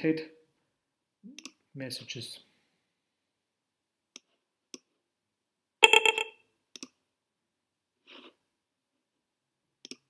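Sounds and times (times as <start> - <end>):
computer mouse clicks: 1.4 - 1.6, 4.1 - 4.9, 6.8 - 7.0.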